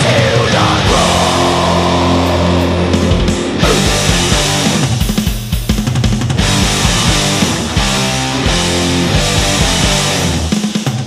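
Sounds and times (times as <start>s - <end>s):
metal drumming: 0.0s - 11.0s
distorted guitar chord ringing: 0.9s - 5.0s, 6.4s - 10.5s.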